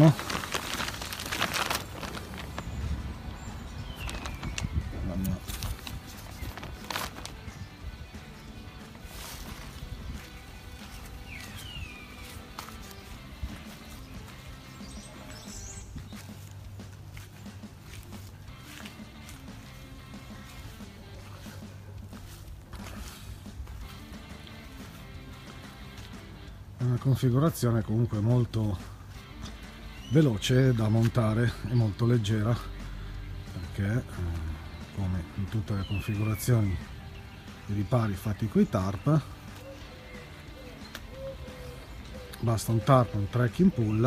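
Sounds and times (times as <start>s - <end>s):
plastic tarp rustling and clicks: 0.0s - 2.8s, 4.0s - 7.4s
quiet background music: 0.0s - 44.0s.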